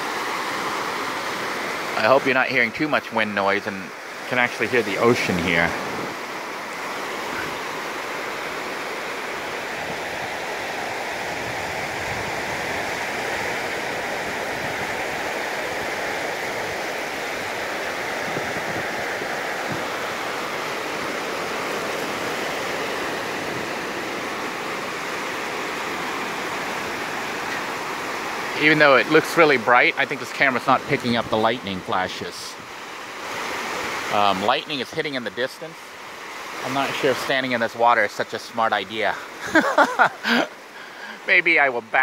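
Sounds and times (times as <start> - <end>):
ocean surf washing on beach: 0.0 - 42.0.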